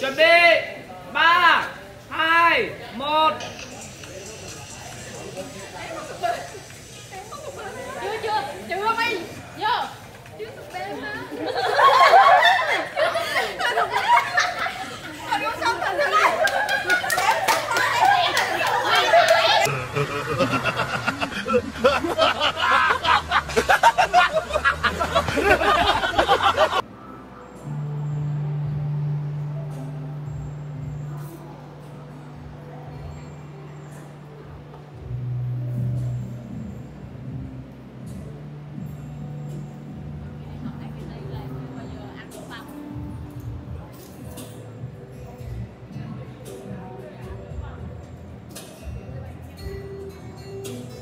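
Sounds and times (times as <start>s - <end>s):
young people chattering: 0.7s - 26.9s, 29.4s - 37.0s, 39.2s - 51.0s
laughter: 11.3s - 15.2s, 15.9s - 26.8s
loud low drone: 26.8s - 33.8s.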